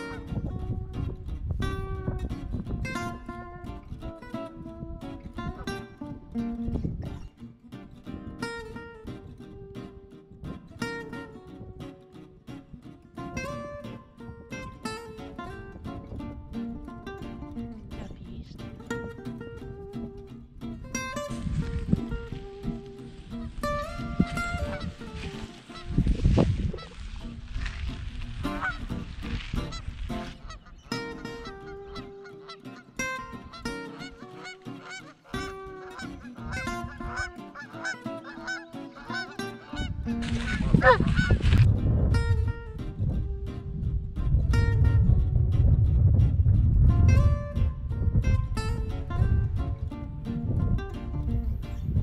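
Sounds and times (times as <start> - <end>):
wind gusts on microphone: 0.0 - 32.2, 34.8 - 37.8, 38.4 - 52.0
acoustic guitar music: 0.0 - 52.0
goose honking: 23.4 - 27.8, 28.4 - 41.7.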